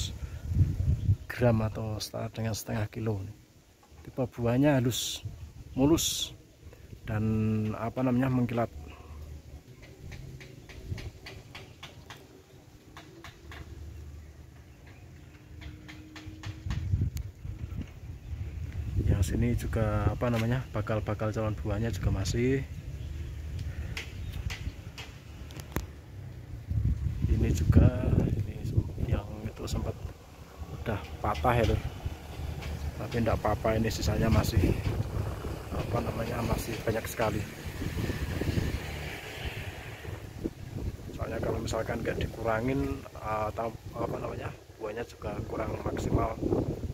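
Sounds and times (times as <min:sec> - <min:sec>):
low rumble on microphone: 0:00.0 - 0:01.7, 0:13.3 - 0:46.9
light clicks and ticks: 0:23.5 - 0:26.4, 0:30.8 - 0:33.4.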